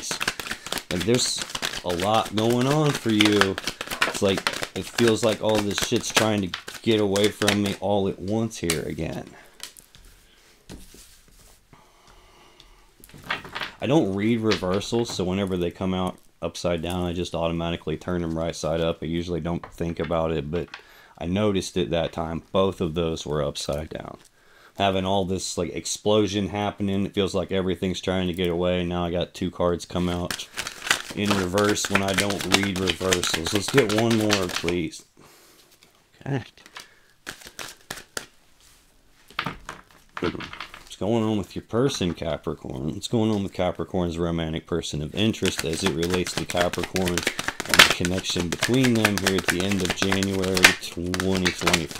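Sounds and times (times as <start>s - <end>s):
cards being shuffled: 0.0s - 11.6s, 13.0s - 15.6s, 30.0s - 34.9s, 36.6s - 41.1s, 45.2s - 51.9s
cards tapping on wooden table: 0.1s - 7.8s, 45.4s - 51.9s.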